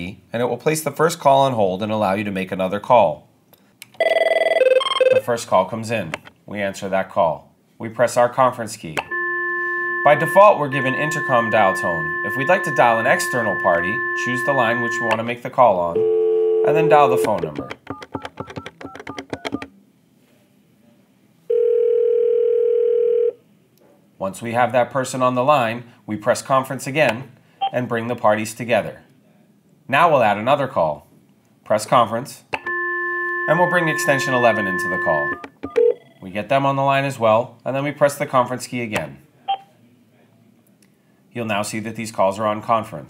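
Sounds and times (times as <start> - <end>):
phone ringing tone: 4.0 - 5.2, 9.1 - 15.2, 15.9 - 18.2, 21.5 - 23.4, 32.6 - 36.2
phone keypad beeping: 9.1 - 15.2, 16.5 - 19.7, 32.6 - 36.1.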